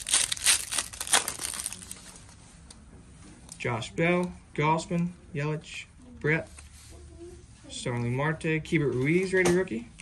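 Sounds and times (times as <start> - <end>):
foil wrapper tearing and crinkling: 0.0 - 2.1.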